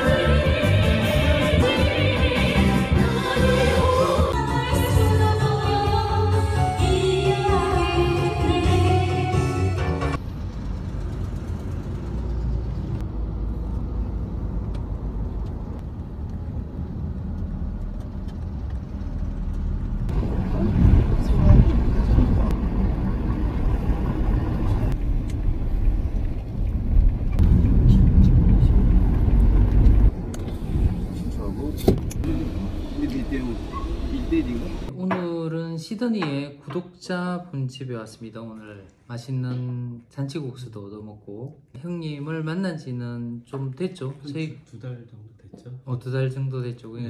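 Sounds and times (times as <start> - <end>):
low rumble of traffic: 10.0 - 35.0.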